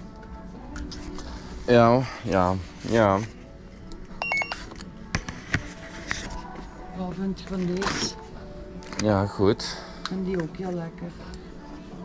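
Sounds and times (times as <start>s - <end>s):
electronic beep: 4.2s - 4.6s.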